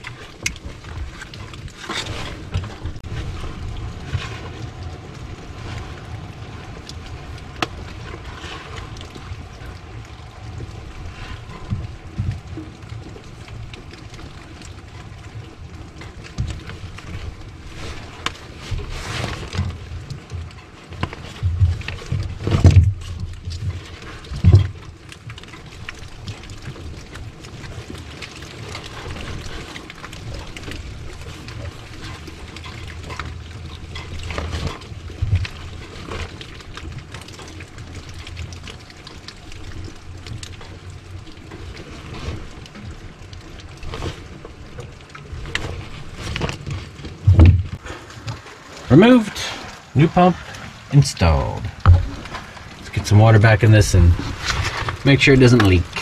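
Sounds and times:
loud thumps: 0:51.8 - 0:52.2.

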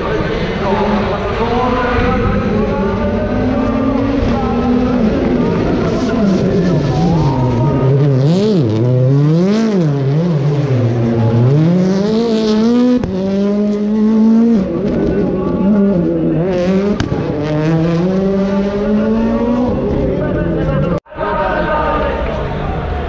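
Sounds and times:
rally car engine revving: 0:00.0 - 0:21.0.

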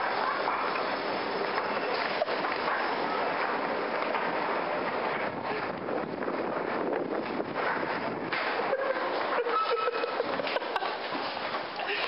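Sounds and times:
wind rushing on microphone: 0:04.8 - 0:08.8.

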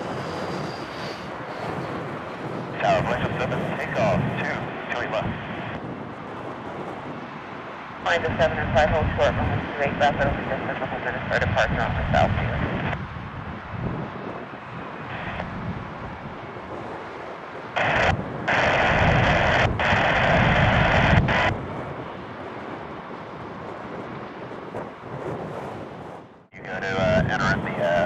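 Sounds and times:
radio static hiss: 0:00.0 - 0:05.8, 0:08.0 - 0:13.0, 0:15.0 - 0:15.5, 0:17.7 - 0:21.6, 0:26.6 - 0:28.0
jet engines rumbling: 0:00.0 - 0:28.0
wind on microphone: 0:00.0 - 0:28.0.

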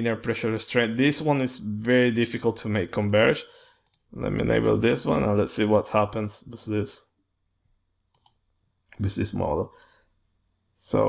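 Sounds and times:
computer mouse clicks: 0:03.8 - 0:05.5, 0:08.1 - 0:09.0.

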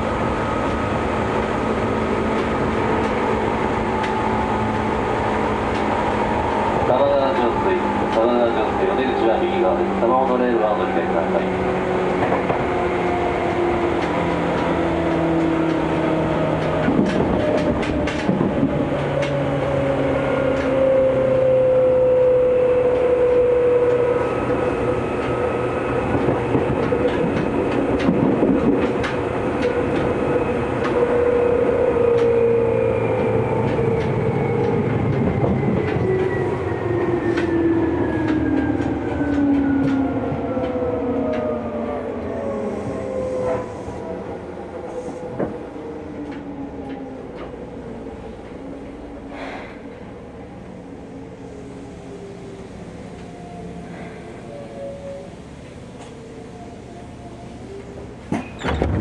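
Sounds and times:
train traction motors whining: 0:00.0 - 0:59.0
wheels clicking over rail joints: 0:13.6 - 0:20.8.

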